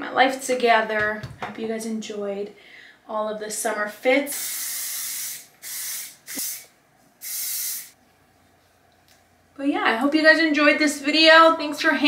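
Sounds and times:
hair spray hissing: 4.3s - 8.0s.

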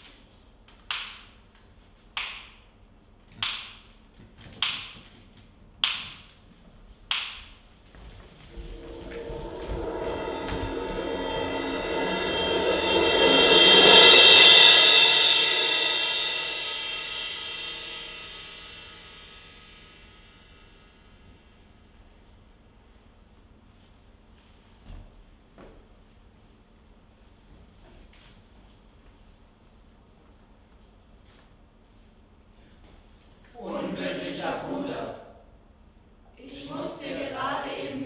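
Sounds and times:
rolled cymbal swell: 8.4s - 21.2s, 33.6s - 35.3s, 36.4s - 38.0s
sharp ringing percussion strikes: 8.5s - 20.8s.

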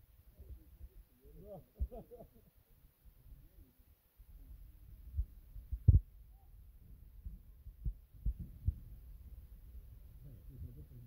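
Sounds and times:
faint low rumble: 3.1s - 11.0s
dull low thumps: 4.5s - 10.8s.

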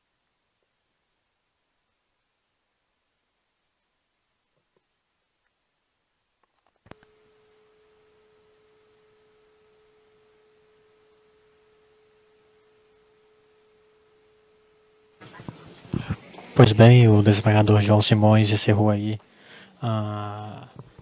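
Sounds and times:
room noise: 0.0s - 21.0s
electronic test tone: 6.9s - 17.9s.

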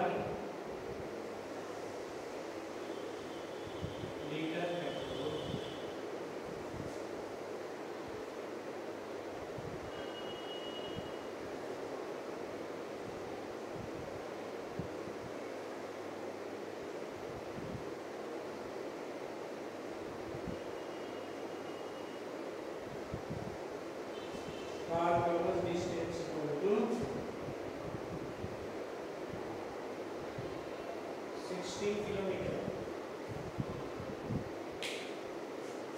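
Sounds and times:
steady background hiss: 0.0s - 35.9s.

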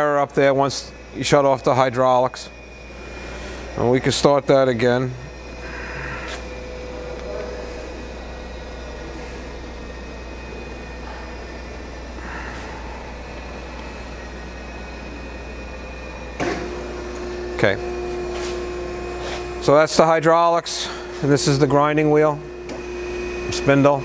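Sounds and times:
hydraulic system steady tone: 0.0s - 24.0s
surface grinder humming: 0.0s - 24.0s.

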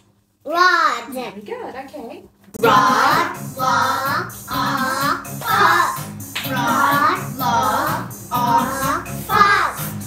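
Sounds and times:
child singing: 2.6s - 9.9s
music: 2.6s - 10.0s.

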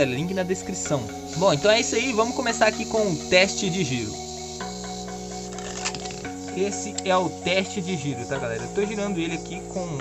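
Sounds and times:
background music with held chords: 0.0s - 10.0s.

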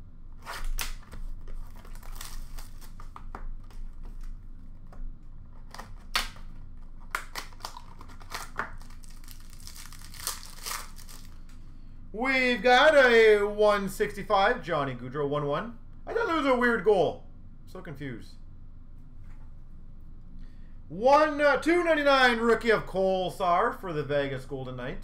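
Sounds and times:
wrappers tearing and crinkling: 0.4s - 4.4s, 5.6s - 11.6s.

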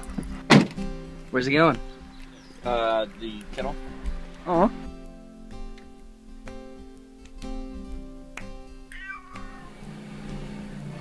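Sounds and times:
acoustic guitar music: 0.0s - 11.0s
cat meowing: 8.9s - 9.9s.

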